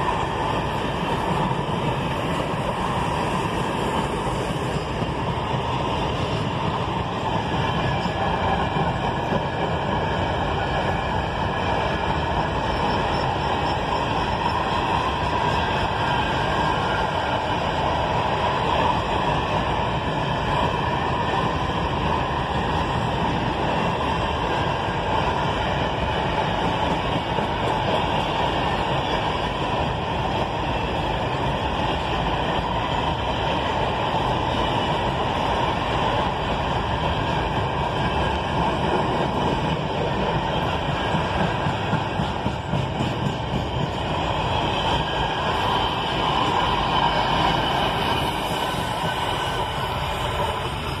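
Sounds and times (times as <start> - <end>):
train wheels on rails: 0.0 - 51.0.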